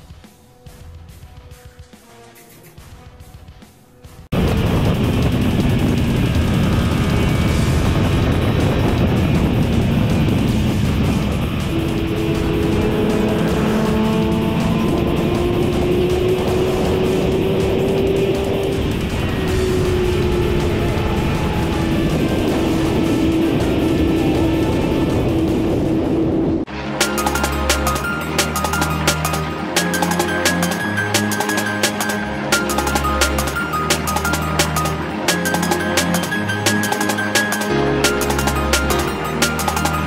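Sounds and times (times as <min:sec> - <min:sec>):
music: 0:00.0 - 0:06.0, 0:06.9 - 0:25.8, 0:26.6 - 0:40.0
motorcycle engine at high speed: 0:02.5 - 0:40.0
wind rush: 0:04.3 - 0:26.7.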